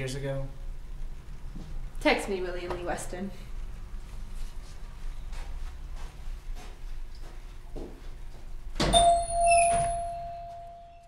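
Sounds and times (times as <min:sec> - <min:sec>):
small bell ringing: 0:09.0 - 0:11.0.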